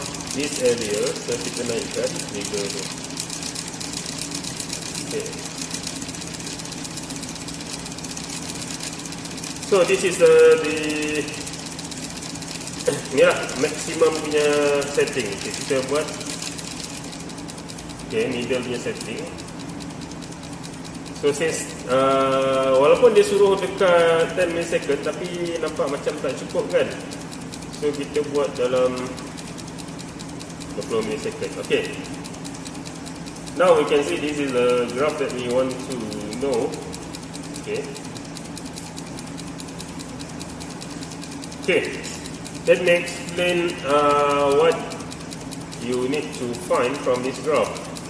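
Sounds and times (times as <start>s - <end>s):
fast even ticking: 0.0s - 48.0s
steady mechanical hum: 0.0s - 48.0s.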